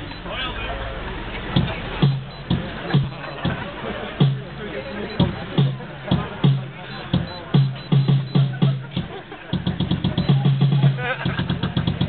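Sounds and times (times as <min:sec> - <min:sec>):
piano music with driving bass: 0:01.6 - 0:12.0.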